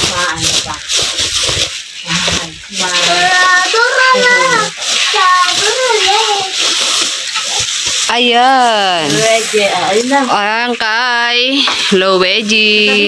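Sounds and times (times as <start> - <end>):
plastic bags rustling: 0.0 - 13.0
child's wavering voice: 3.1 - 6.6.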